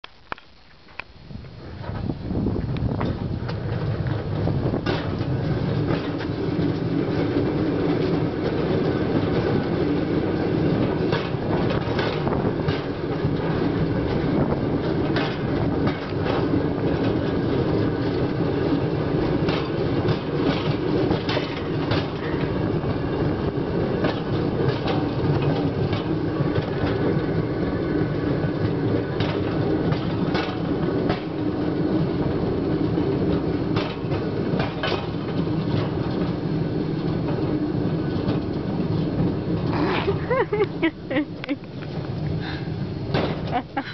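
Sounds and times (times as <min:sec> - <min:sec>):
wheels clacking over rail joints: 0:00.4 - 0:43.9
steel wheels rumbling on rails: 0:00.9 - 0:43.9.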